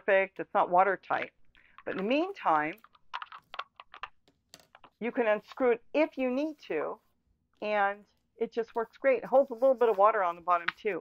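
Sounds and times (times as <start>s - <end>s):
plastic bottle clicking: 1.8s - 5.0s.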